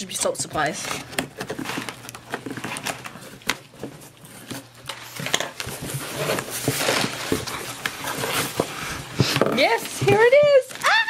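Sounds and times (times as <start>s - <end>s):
cardboard rustling: 0.0s - 11.0s.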